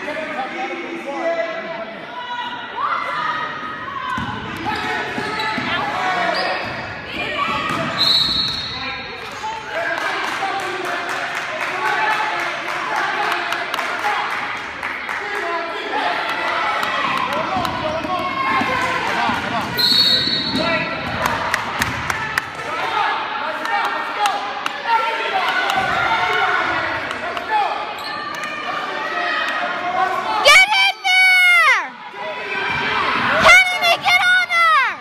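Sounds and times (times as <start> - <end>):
voices in a gym: 0.0 - 35.0
referee's whistle: 7.9 - 8.8, 19.8 - 20.6.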